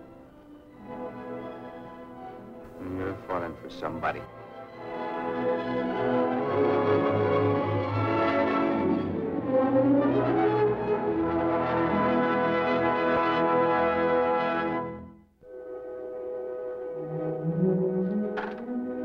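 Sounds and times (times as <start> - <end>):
quiet music cue: 0.0 - 13.1
orchestral music with brass: 0.0 - 19.0.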